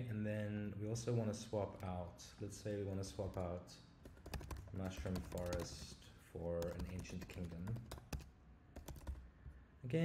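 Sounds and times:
keyboard keystrokes clicking: 3.1s - 5.9s, 6.6s - 9.2s.

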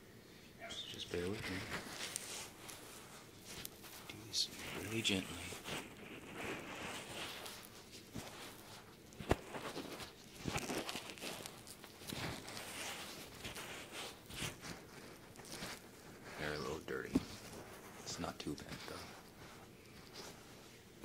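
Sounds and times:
rubbing and scratching in ear: 0.8s - 21.0s.

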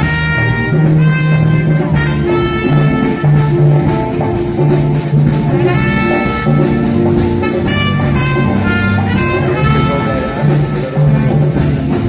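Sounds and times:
big band playing jazz: 0.0s - 12.0s
brass section chords: 0.0s - 12.0s.

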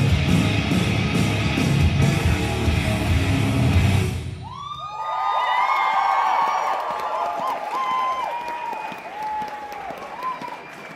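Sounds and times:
heavy metal music: 0.0s - 4.4s
audience cheering and clapping: 3.8s - 10.9s.

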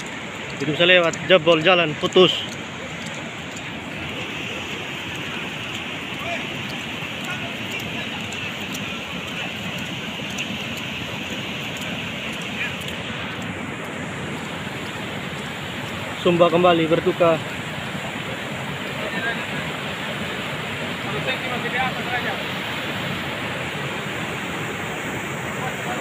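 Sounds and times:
floodwater rushing over road: 0.0s - 26.0s.

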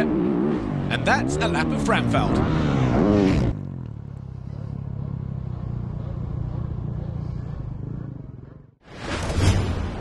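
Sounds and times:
motorbike engine droning: 0.0s - 8.8s.

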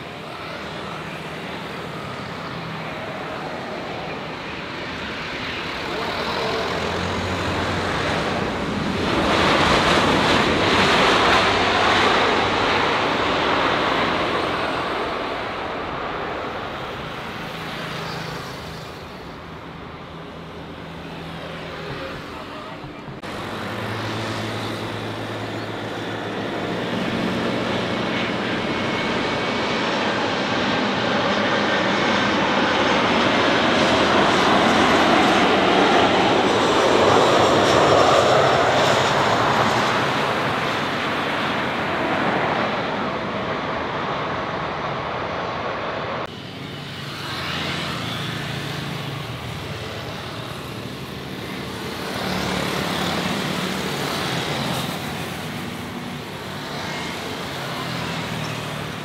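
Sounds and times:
jet engines on landing: 0.0s - 59.0s.

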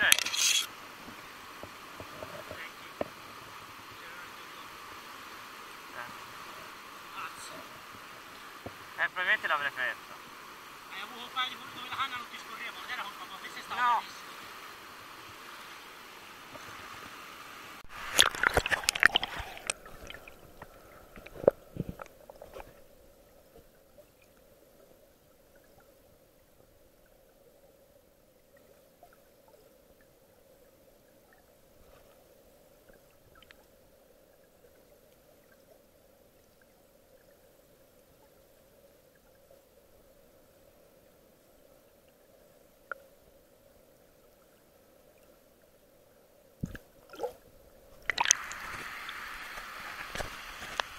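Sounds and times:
muffled underwater stream: 0.8s - 50.9s
splashing and knocking: 17.9s - 20.6s.

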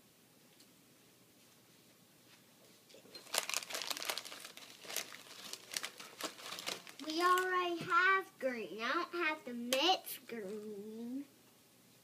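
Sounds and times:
paper rustling and crinkling: 3.2s - 7.7s.

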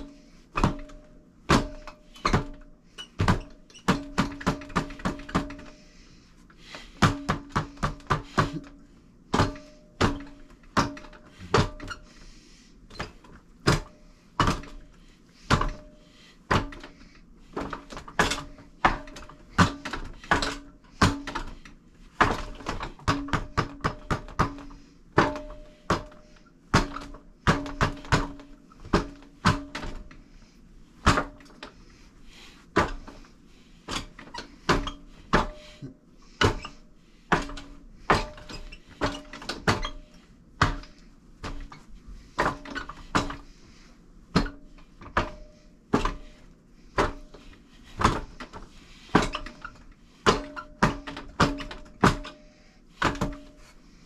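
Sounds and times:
wooden knocks on training dummy: 3.2s - 5.7s.

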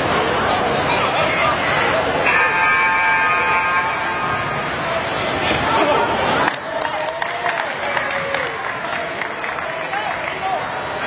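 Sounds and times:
hall noise: 0.0s - 10.3s.

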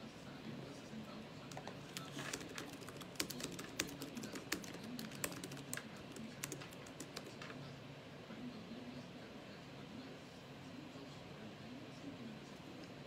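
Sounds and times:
laptop keyboard typing: 1.5s - 7.6s.

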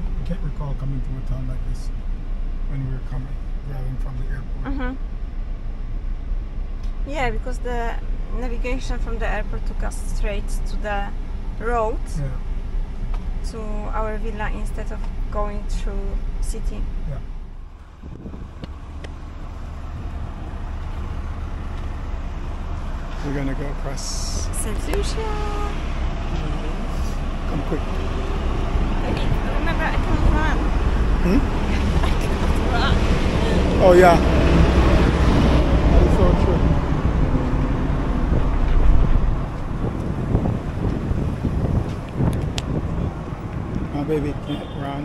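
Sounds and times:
traffic rumble: 0.0s - 45.0s
wind on microphone: 17.8s - 19.1s, 26.8s - 44.9s.

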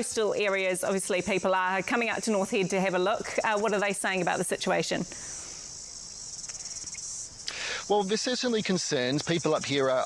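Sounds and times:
insect chorus buzzing: 0.0s - 10.0s.

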